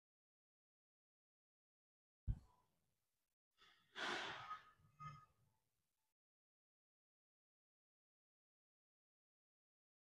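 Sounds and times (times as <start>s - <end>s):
faint breath: 3.6s - 5.0s.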